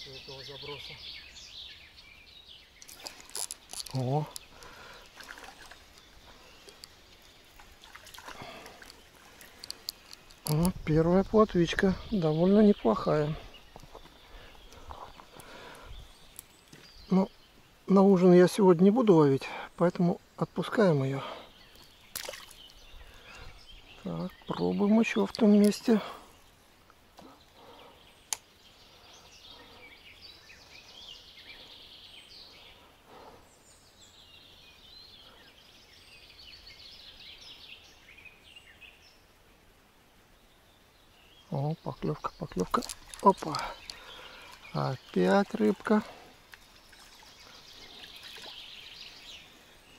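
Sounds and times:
faint songbirds singing: 0.0 - 49.9
hands handling a fish: 2.8 - 10.8.

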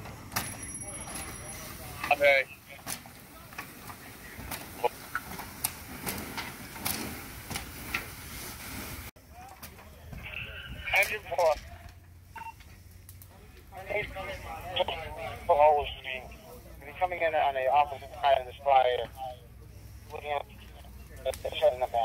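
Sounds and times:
men's voices: 0.7 - 5.6, 9.2 - 22.0
fire hose spraying hiss: 0.9 - 9.1, 12.7 - 22.0
crackling clicks: 2.0 - 8.2, 9.4 - 14.1, 20.1 - 22.0.

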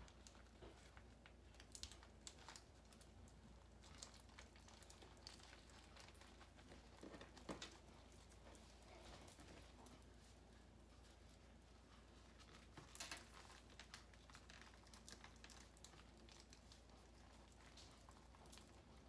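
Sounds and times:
hands rolling tortilla rustling: 0.0 - 19.0.

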